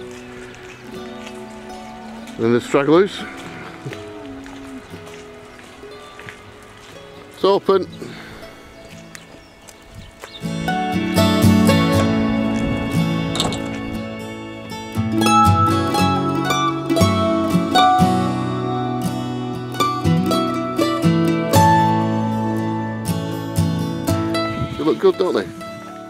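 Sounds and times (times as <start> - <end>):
plucked string music: 0.0 - 7.4, 10.4 - 26.0.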